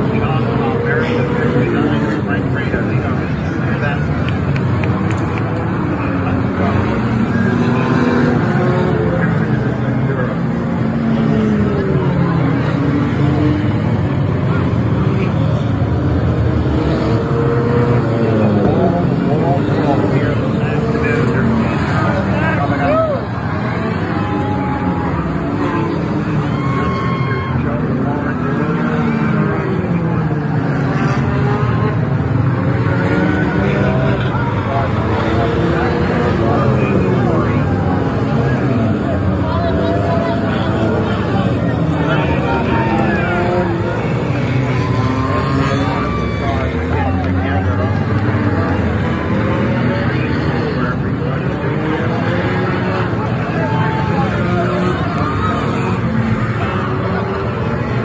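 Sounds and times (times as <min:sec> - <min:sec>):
crowd murmur: 0:00.0 - 0:58.0
race car engines passing: 0:00.0 - 0:58.0.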